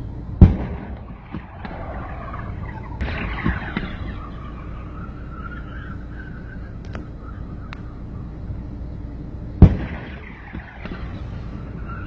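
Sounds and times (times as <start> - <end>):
cannon boom with rumbling tail: 0.4 - 6.0, 9.6 - 11.9.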